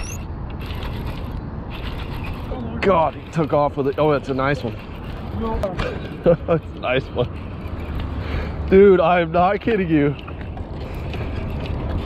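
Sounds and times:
fishing reel gears whirring: 0.0s - 5.5s.

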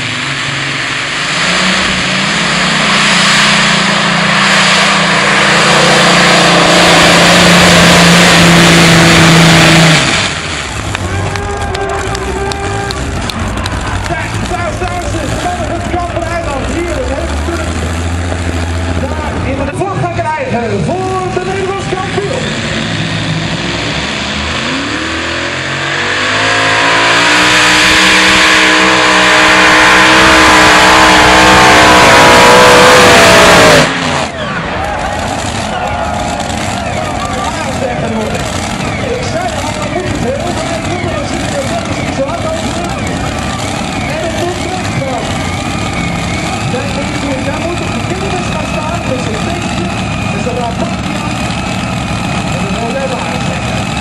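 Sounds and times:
pulling tractor engines at full throttle: 0.0s - 54.0s
voices: 11.0s - 17.9s, 34.3s - 54.0s.

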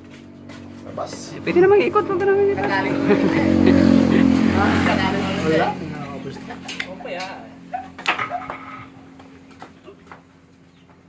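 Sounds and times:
vehicle engine running: 0.0s - 11.0s
people talking: 0.9s - 7.6s.

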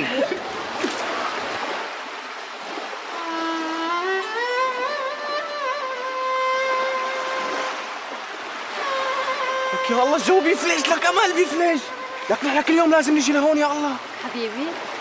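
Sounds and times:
melodic line with sliding notes: 8.8s - 13.3s.

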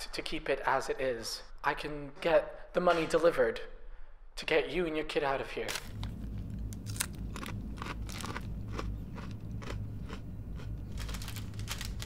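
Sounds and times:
low steady hum: 3.6s - 12.0s
foil packet crinkling: 5.7s - 9.3s, 10.6s - 12.0s
crisps being crunched: 5.7s - 12.0s.

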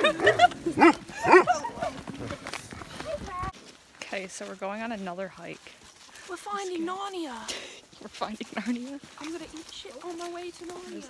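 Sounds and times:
dog barking: 0.8s - 1.6s.

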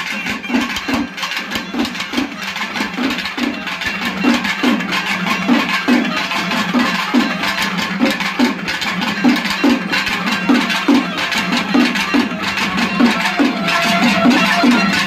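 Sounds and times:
drums beating fast rhythm: 0.0s - 15.0s.

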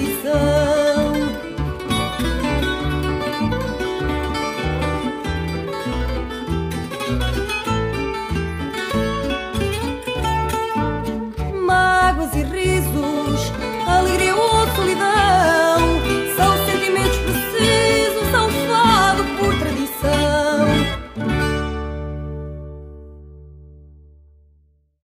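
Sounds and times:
regular bass pulse: 0.0s - 12.1s
guitar picking quick melody: 0.0s - 24.4s
guitar accompaniment: 0.0s - 24.6s.

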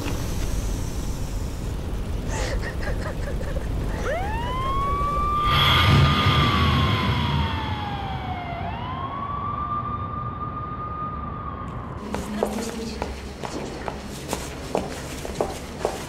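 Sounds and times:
rumbling noise: 0.0s - 16.0s
emergency vehicle siren wailing: 3.7s - 12.0s.

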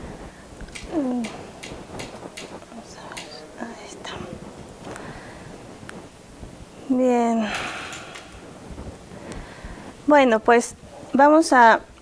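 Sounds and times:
people talking: 0.9s - 1.4s, 6.9s - 7.7s, 10.1s - 11.9s.

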